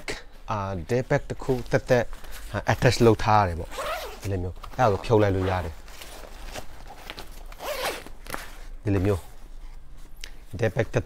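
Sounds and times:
man talking: 0.0 - 5.8, 8.8 - 9.3, 10.5 - 11.0
backpack zipper: 3.7 - 4.3, 7.5 - 8.2.

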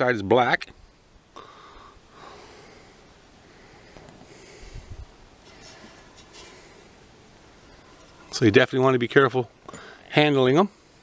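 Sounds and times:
faint breathing: 0.7 - 8.3, 9.6 - 10.1, 10.7 - 11.0.

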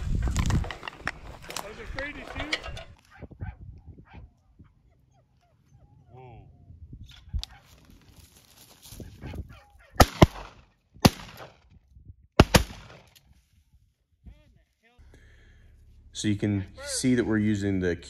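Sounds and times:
loud sharp bangs: 12.4 - 13.0.

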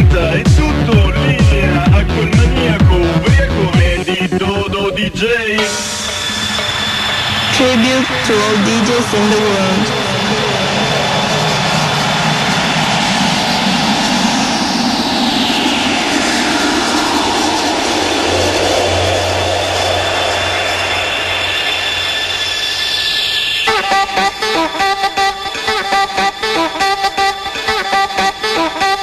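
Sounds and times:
low hum: 0.0 - 25.6
jet aircraft flyby rushing: 5.7 - 28.5.

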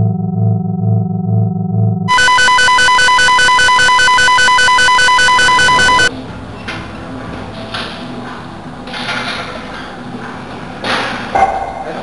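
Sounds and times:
pulsing electronic ringing tone: 2.1 - 6.1.

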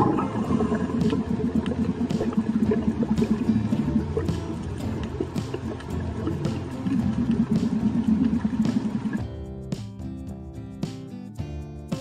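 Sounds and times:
low underwater rumbling flutter: 0.0 - 9.2.

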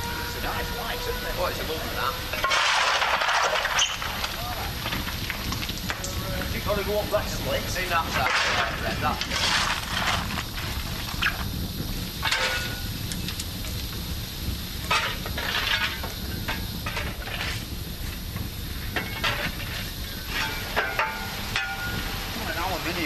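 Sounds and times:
low rumble of fire burning: 0.0 - 23.0
shovel scraping and clattering coal: 2.3 - 13.3, 14.8 - 23.0.

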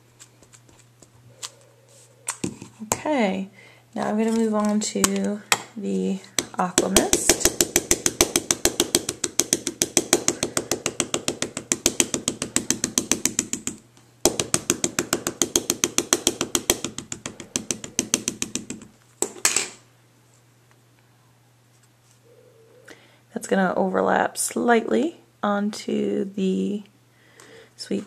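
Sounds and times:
ink pad tapping on stamp: 6.4 - 18.9.

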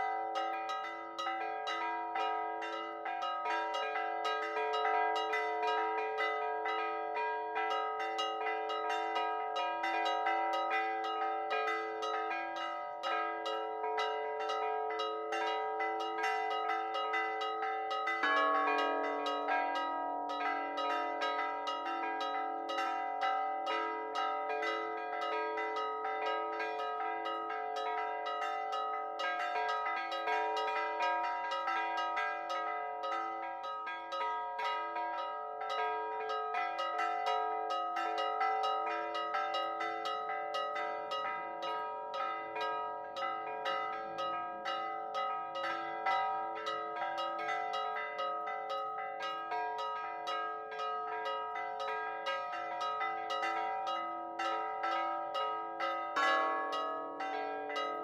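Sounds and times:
church bells pealing: 0.0 - 58.0.

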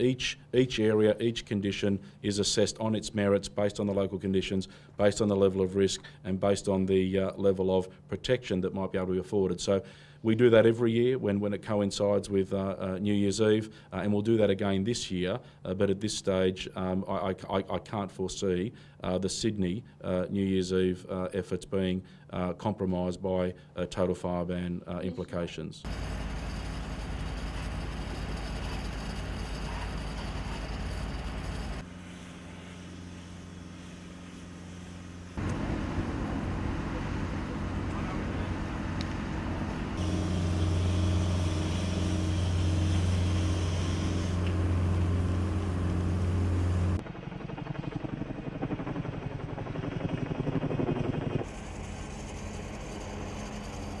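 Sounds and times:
engine hum: 25.9 - 47.0.

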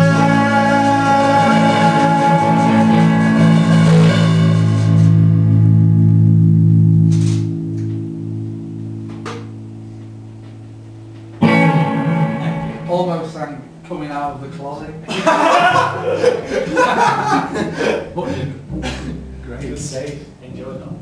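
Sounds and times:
electric guitars and bass chord: 0.0 - 14.0, 15.4 - 20.6.

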